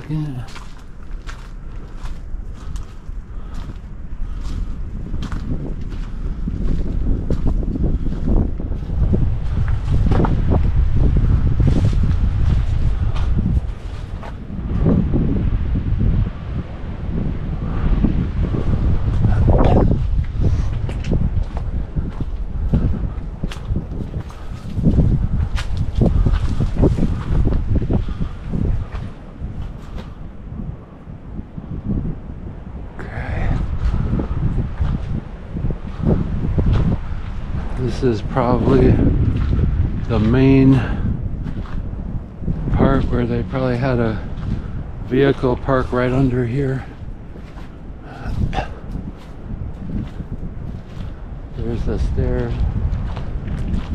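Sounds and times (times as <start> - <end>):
footsteps: 0.0 - 15.0, 18.6 - 30.2, 43.7 - 53.9
wind buffeting microphone: 0.0 - 53.9
rustling underfoot: 46.7 - 51.4.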